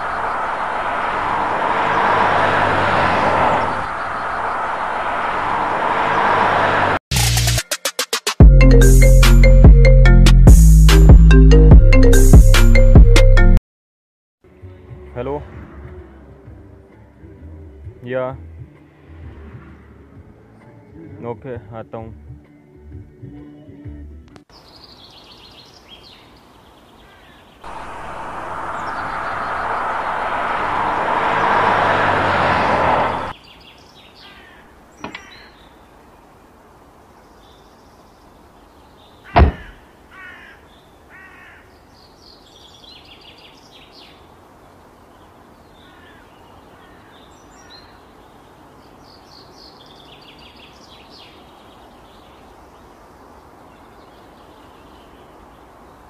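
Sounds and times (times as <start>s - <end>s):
bird calls: 3.5s - 5.0s, 24.5s - 32.0s, 33.0s - 36.4s, 37.2s - 55.8s
high bird chirping: 27.6s - 31.4s.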